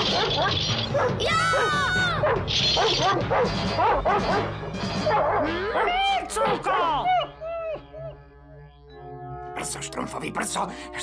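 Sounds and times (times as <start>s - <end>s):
cartoon dog barking: 0.0s - 4.5s
background music: 0.0s - 11.0s.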